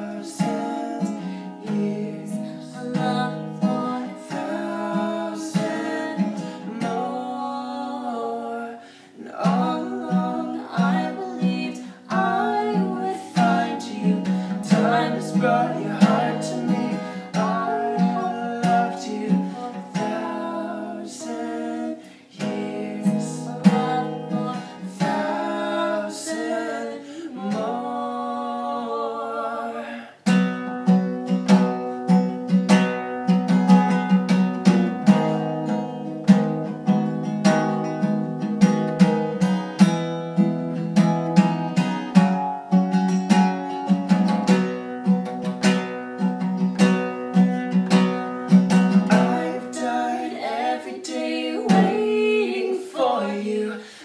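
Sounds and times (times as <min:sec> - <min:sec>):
man and woman singing ballad: 0:00.0 - 0:30.4, 0:48.6 - 0:54.0
acoustic guitar strumming: 0:00.0 - 0:54.0.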